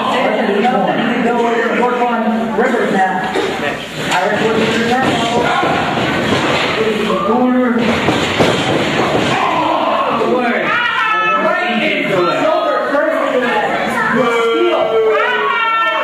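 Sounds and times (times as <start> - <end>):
people talking and shouting: 0.0 - 16.0.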